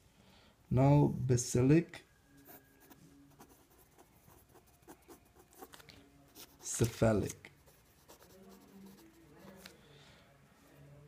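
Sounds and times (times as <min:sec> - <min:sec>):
pen scratching on paper: 0:02.5 - 0:07.0, 0:07.6 - 0:09.8.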